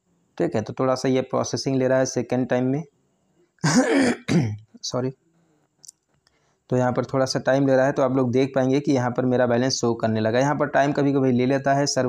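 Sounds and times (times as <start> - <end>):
man clearing his throat: 3.6 - 4.6.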